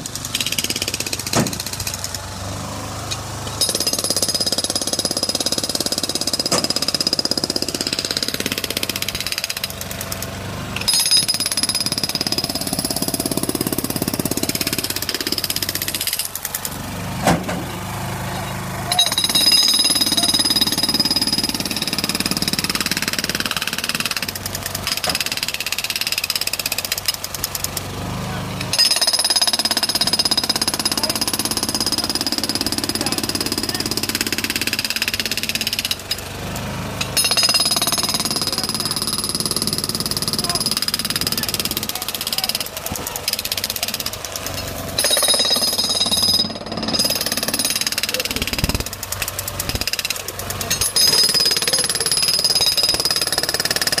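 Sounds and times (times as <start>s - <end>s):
jackhammer breaking asphalt: 0.0s - 17.8s, 18.8s - 54.0s.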